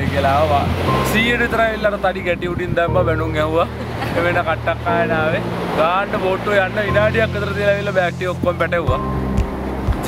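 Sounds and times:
man talking: 0:00.0 - 0:09.0.

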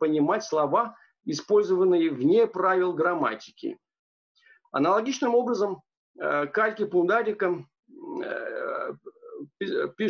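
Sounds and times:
man speaking: 0:00.0 - 0:03.8, 0:04.8 - 0:10.0
man's drawn-out hesitation sound: 0:06.2 - 0:10.0.

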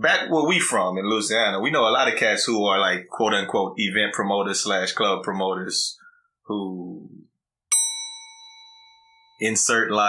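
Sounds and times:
bell ding ringing: 0:07.7 - 0:09.5.

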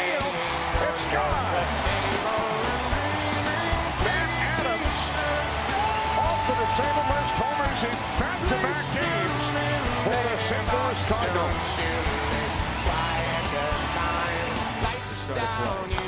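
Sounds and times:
person singing: 0:00.0 - 0:16.0
rock music: 0:00.0 - 0:16.0
steady bass line: 0:00.0 - 0:16.0.

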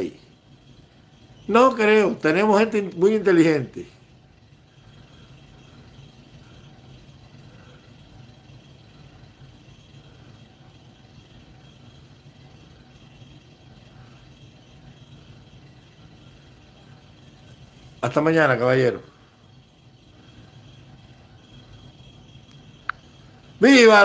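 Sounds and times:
low background hum: 0:00.0 - 0:24.0.

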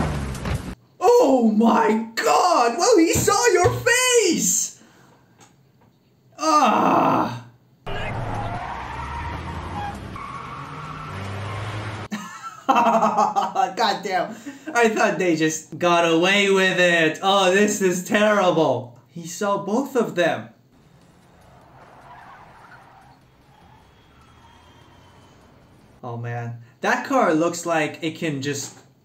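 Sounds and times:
car accelerating hard: 0:07.9 - 0:12.1, 0:20.8 - 0:26.0
tyres squealing on concrete: 0:07.9 - 0:12.1, 0:20.8 - 0:26.0.

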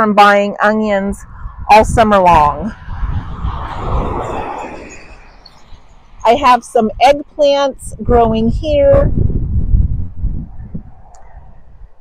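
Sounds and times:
low rumbling on microphone: 0:00.8 - 0:12.0.

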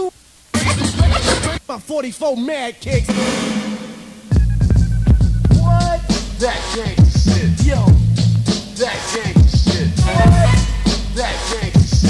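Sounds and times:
short pitched sample: 0:02.9 - 0:06.5
steady drum hits: 0:02.9 - 0:08.8, 0:09.4 - 0:12.0
deep humming bass line: 0:04.3 - 0:08.5, 0:09.8 - 0:12.0.

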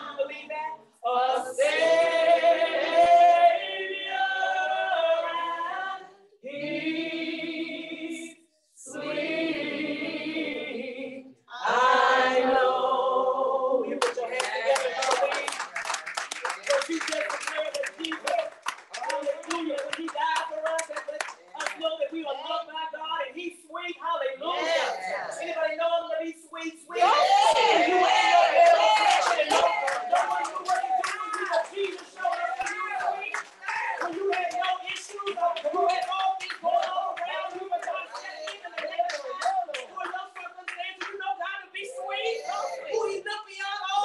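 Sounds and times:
hand clapping: 0:14.0 - 0:22.0, 0:28.6 - 0:41.6
person speaking: 0:29.4 - 0:44.0.

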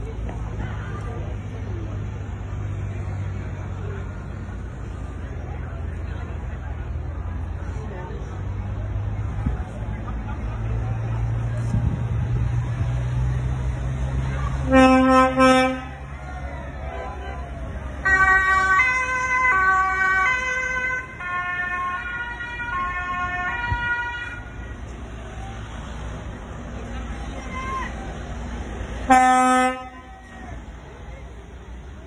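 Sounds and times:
loud horn blast: 0:14.6 - 0:16.2, 0:18.0 - 0:24.7, 0:29.0 - 0:30.3
two-tone siren: 0:18.0 - 0:24.4.

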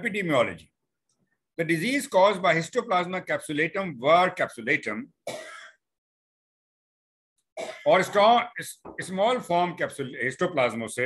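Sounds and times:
man speaking: 0:00.0 - 0:00.8, 0:01.5 - 0:05.2, 0:07.8 - 0:11.0.

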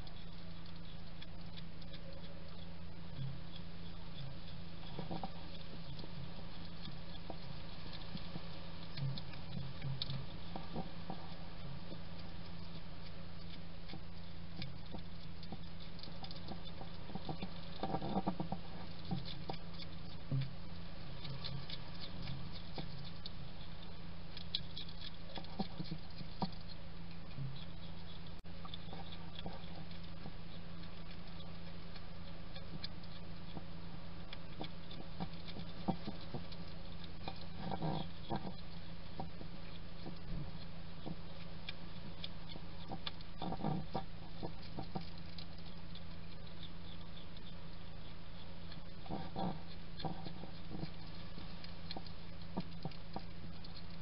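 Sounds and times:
hedgehog chewing and smacking: 0:00.0 - 0:54.0
steady low hum: 0:00.0 - 0:54.0.

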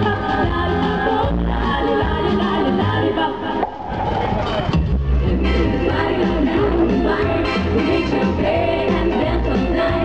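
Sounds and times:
vocal trio singing: 0:00.0 - 0:03.9, 0:05.2 - 0:10.0
live band music: 0:00.0 - 0:10.0.

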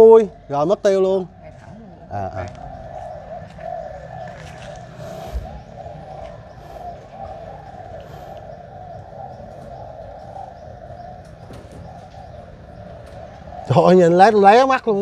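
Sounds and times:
pigeons cooing: 0:00.0 - 0:15.0.

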